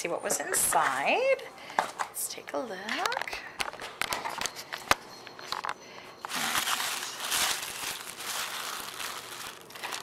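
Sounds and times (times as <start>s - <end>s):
tissue paper rustling: 6.3s - 10.0s.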